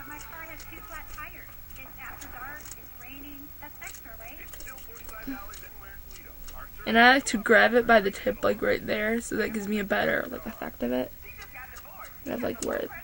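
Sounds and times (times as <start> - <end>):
woman speaking close: 0.0 - 5.5, 6.9 - 11.2, 12.2 - 13.0
faint murmuring voices: 0.0 - 13.0.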